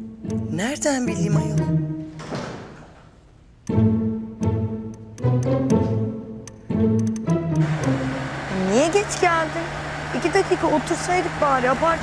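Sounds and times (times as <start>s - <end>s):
low strings score: 0.0s - 2.6s, 3.6s - 12.0s
soft noisy swell: 7.7s - 12.0s.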